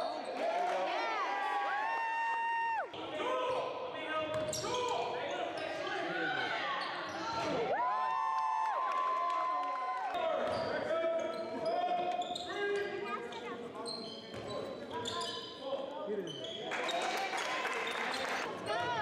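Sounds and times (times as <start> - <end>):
sneakers squeaking on gym floor: 4.3 - 6.0, 6.6 - 7.6, 10.4 - 17.2.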